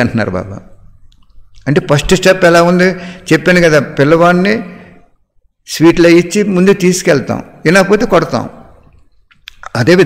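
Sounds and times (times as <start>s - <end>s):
man giving a talk: 0.0s - 0.9s, 1.5s - 10.0s.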